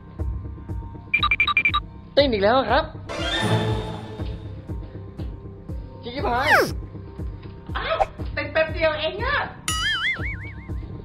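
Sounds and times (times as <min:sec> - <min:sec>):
background music with steady beat: 0:00.0 - 0:11.0
person speaking: 0:06.2 - 0:06.8.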